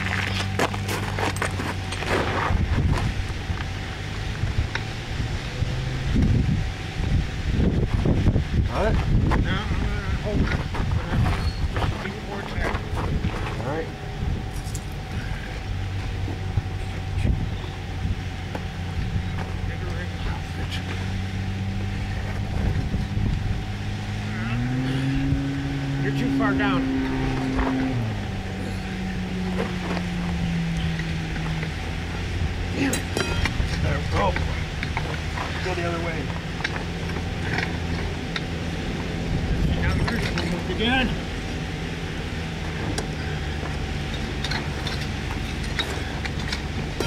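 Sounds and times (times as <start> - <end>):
engine running: 0.0 - 47.0.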